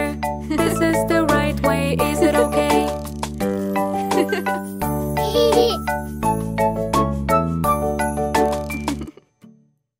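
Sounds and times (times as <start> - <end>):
children's song music: 0.0 - 9.1.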